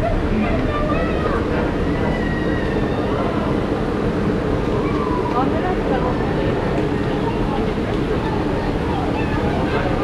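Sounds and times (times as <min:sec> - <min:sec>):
passengers' voices: 0:00.0 - 0:10.0
train rumbling at platform: 0:00.0 - 0:10.0.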